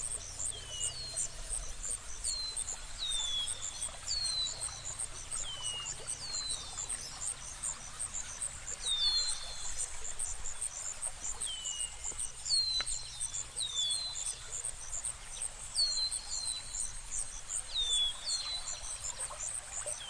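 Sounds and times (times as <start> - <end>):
crickets chirping: 0.0 - 20.0.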